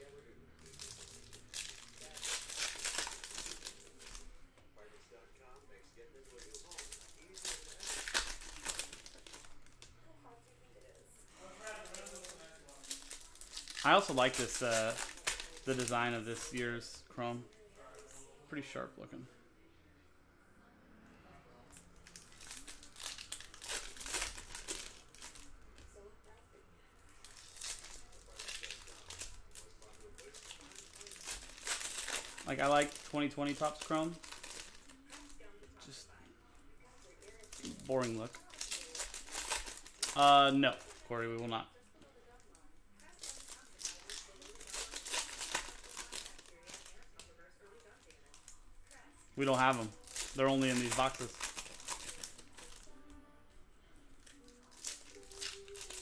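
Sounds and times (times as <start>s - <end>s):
foil card packs crinkling: 0.0s - 4.3s, 6.3s - 9.8s, 11.4s - 17.4s, 22.0s - 25.5s, 27.2s - 36.1s, 36.9s - 41.6s, 43.0s - 48.5s, 49.4s - 53.0s, 54.3s - 56.0s.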